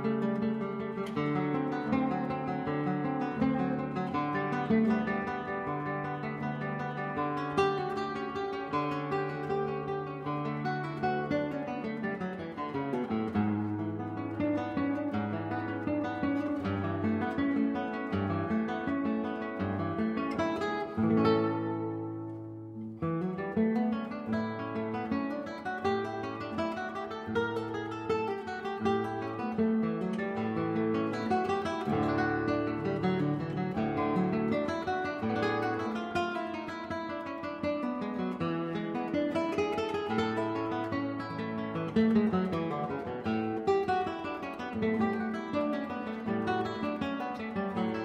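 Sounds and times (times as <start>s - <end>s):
acoustic guitar music: 0.0s - 48.0s.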